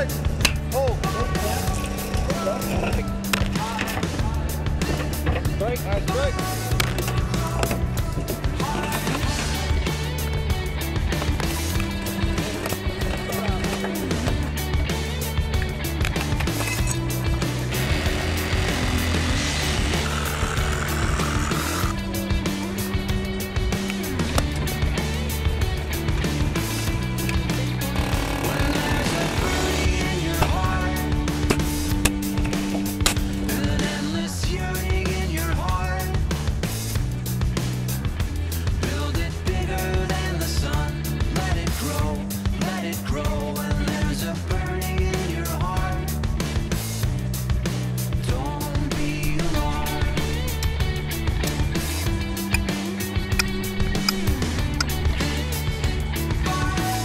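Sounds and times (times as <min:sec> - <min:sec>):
bass line: 0:00.0 - 0:57.0
drum beat: 0:49.2 - 0:56.3.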